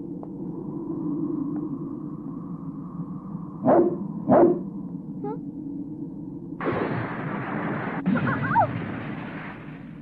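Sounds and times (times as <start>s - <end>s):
low background drone: 0.0s - 10.0s
dog barking: 3.6s - 4.6s.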